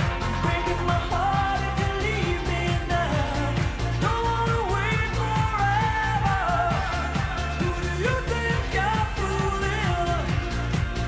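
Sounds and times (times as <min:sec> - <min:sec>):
lead vocal singing: 0:00.0 - 0:11.0
live pop-rock band: 0:00.0 - 0:11.0
steady drum beat: 0:00.0 - 0:11.0.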